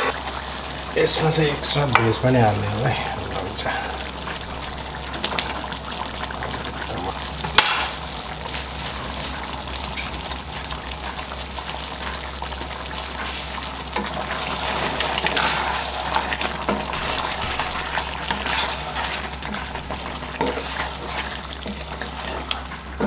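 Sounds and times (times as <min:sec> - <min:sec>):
gravy sizzling in frying pan: 0:00.0 - 0:23.0.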